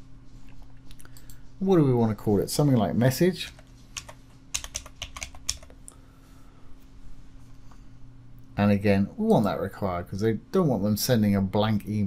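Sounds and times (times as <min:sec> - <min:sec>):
computer keyboard typing: 0:03.5 - 0:05.7.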